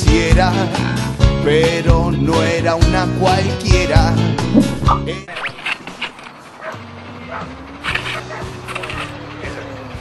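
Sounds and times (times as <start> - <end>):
dog barking: 6.6 - 8.6.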